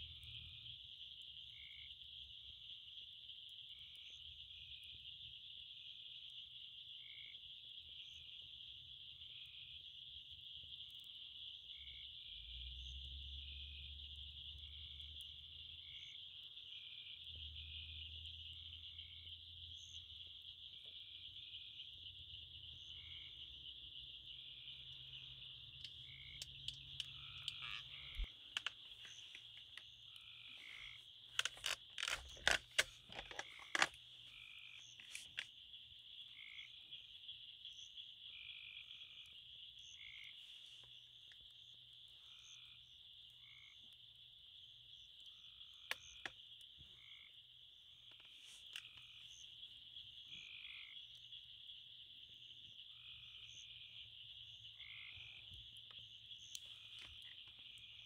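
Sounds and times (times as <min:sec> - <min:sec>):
frogs trilling: 0:00.0 - 0:58.0
sharp clicks: 0:25.8 - 0:29.9, 0:31.3 - 0:34.0.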